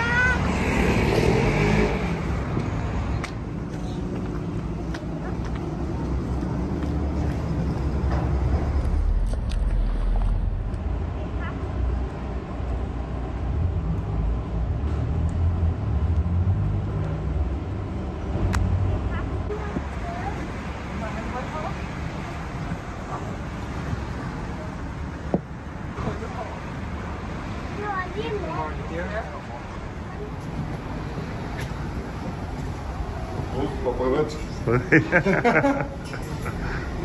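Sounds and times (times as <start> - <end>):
traffic rumble: 0.0 - 37.0.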